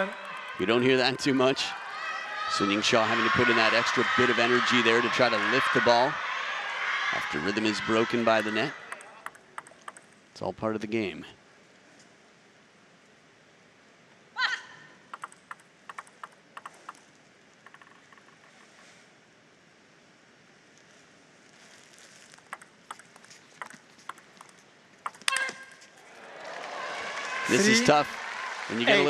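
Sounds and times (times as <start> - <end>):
table tennis ball clicks: 8.9 - 10.2, 15.1 - 17.1, 22.4 - 25.6.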